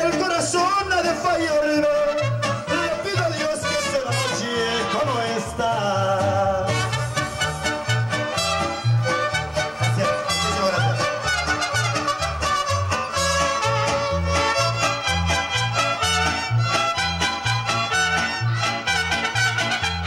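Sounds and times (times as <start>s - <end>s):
strummed guitars: 0.0s - 20.0s
steady bass beat: 5.8s - 20.0s
violins playing melody: 6.8s - 20.0s.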